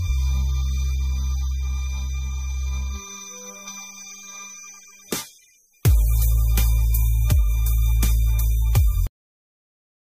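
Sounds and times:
heavy bass: 0.0 - 3.0, 5.9 - 9.1
sustained musical tones: 0.0 - 5.2.

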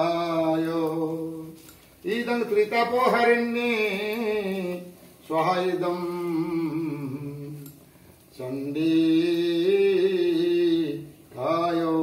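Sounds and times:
man chanting a mantra: 0.0 - 7.6, 8.3 - 12.0.

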